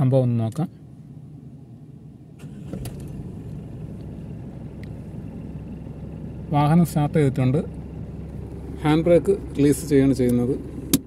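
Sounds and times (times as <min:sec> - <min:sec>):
engine cranking: 0:02.4 - 0:04.2
engine idling: 0:02.4 - 0:11.0.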